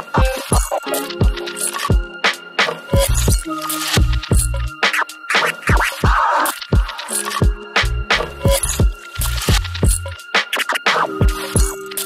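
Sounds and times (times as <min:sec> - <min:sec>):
chill hip hop beat: 0:00.0 - 0:12.0
turntable scratches: 0:00.0 - 0:12.0
kick drums: 0:00.2 - 0:02.1, 0:03.0 - 0:04.6, 0:06.8 - 0:07.6, 0:08.5 - 0:10.1
deep bass line: 0:04.0 - 0:04.8, 0:07.8 - 0:10.2.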